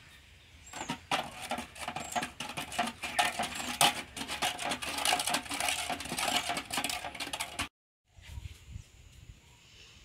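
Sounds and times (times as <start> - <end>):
stick stirring liquid in bucket: 0.7 - 7.7
stick clinking on metal bucket: 0.8 - 7.7.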